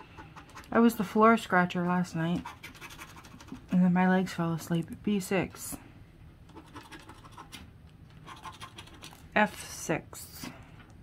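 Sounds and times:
plastic scraper scratching ticket: 0:01.9 - 0:03.7, 0:06.5 - 0:07.6, 0:08.2 - 0:09.2.

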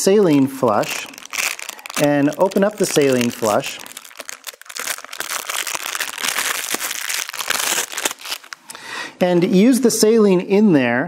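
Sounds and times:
plastic packaging crackling: 0:00.0 - 0:08.8.

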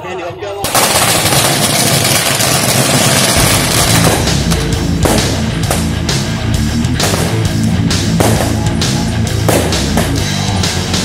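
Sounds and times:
firecrackers crackling: 0:00.6 - 0:10.6
heavy rock music: 0:02.2 - 0:11.0.

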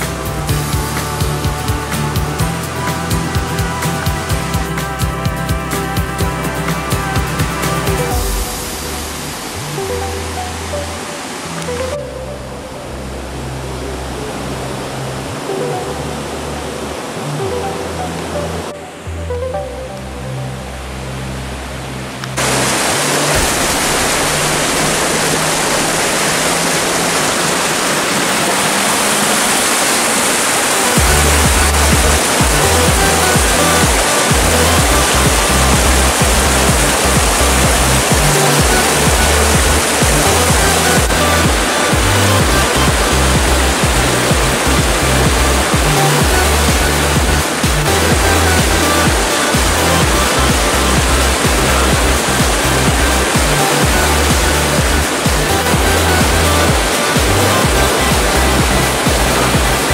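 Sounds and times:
heavy bass beat: 0:00.0 - 0:12.3, 0:22.4 - 0:28.1, 0:30.9 - 0:59.9
background music with bass: 0:00.0 - 0:59.9
stream water rushing over rocks: 0:00.0 - 0:59.9.

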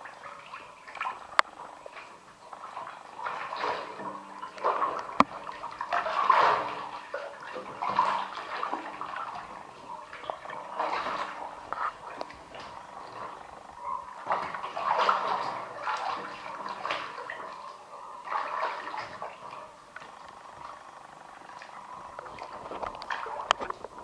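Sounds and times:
water sloshing in a bathtub: 0:00.0 - 0:24.0.

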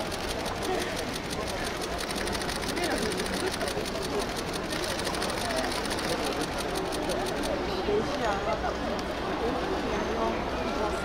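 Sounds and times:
fast even clicking: 0:00.0 - 0:07.6
people chatting: 0:00.0 - 0:11.0.

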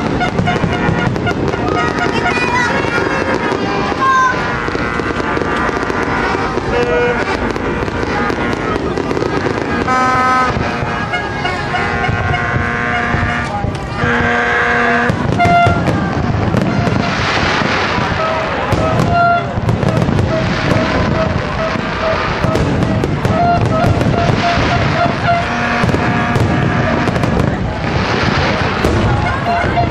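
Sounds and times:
crowd voices: 0:00.0 - 0:29.9
firework crackling: 0:00.0 - 0:29.9
firework shells bursting: 0:00.0 - 0:29.9.

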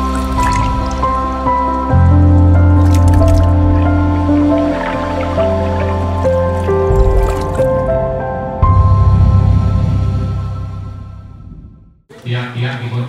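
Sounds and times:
water drips and splashes: 0:00.0 - 0:08.0
intro music with deep bass: 0:00.0 - 0:12.0.

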